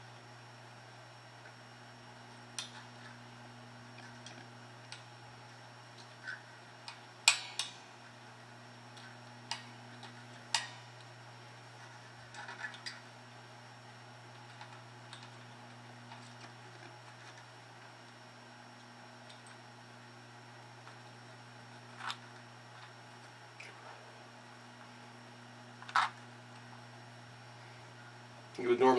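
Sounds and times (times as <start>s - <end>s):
steady low hum: 0.0s - 28.9s.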